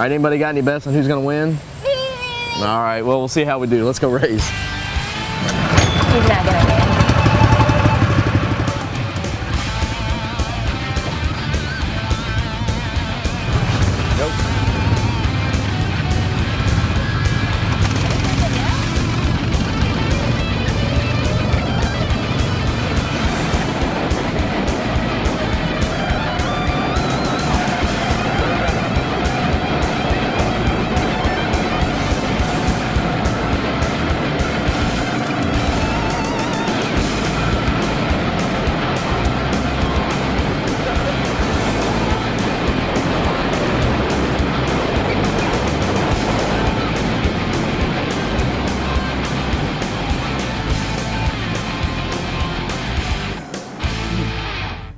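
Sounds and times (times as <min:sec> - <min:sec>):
go-kart engines running: 0:04.2 - 0:54.3
rock music with electric guitar: 0:04.2 - 0:54.9.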